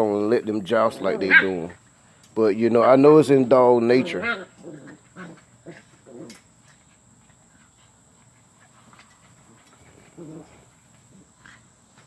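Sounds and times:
high insect trill: 0.0s - 12.0s
puppies growling: 0.7s - 1.8s, 3.6s - 6.5s, 8.7s - 11.7s.

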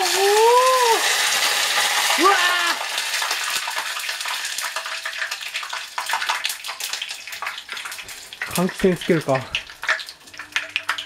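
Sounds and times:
insects deep-frying in hot oil: 0.0s - 11.0s
oil crackling and popping: 0.0s - 11.0s.

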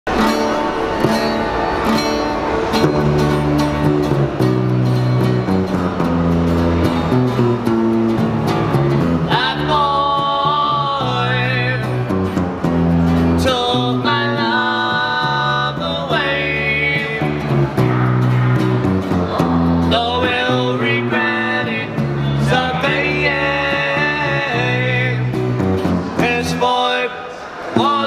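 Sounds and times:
electric bass: 0.1s - 26.6s
acoustic guitar: 0.1s - 28.0s
men singing together: 9.3s - 11.8s, 13.4s - 17.5s, 19.9s - 25.3s, 26.2s - 28.0s.

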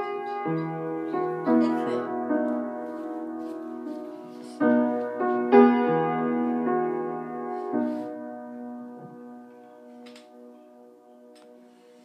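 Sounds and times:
piano chord ringing: 0.0s - 11.8s.

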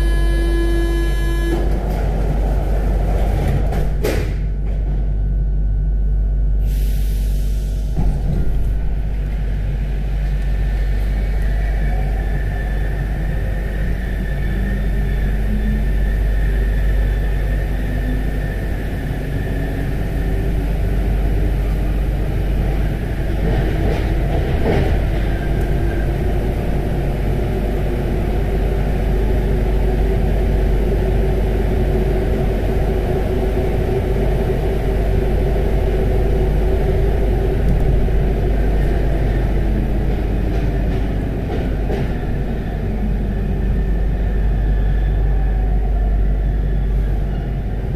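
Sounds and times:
train rumbling through tunnel: 0.0s - 47.9s.

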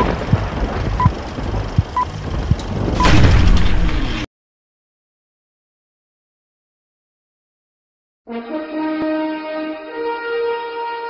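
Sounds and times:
low rumbling crackle: 0.0s - 4.3s.

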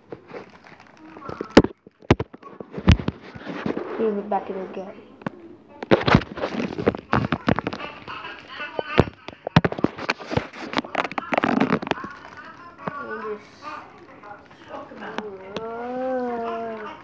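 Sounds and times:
plastic bag crinkling: 0.0s - 4.6s, 5.9s - 17.0s.

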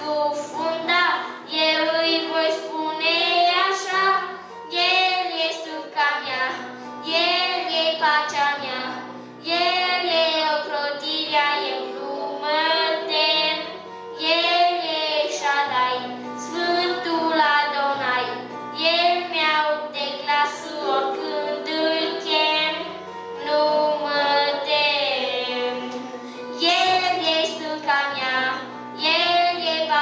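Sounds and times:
child singing into a microphone: 0.0s - 30.0s.

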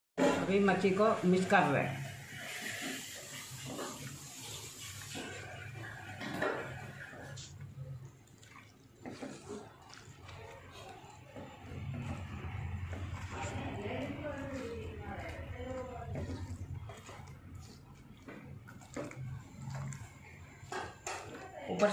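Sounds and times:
hand squishing wet mixture: 2.4s - 21.9s.

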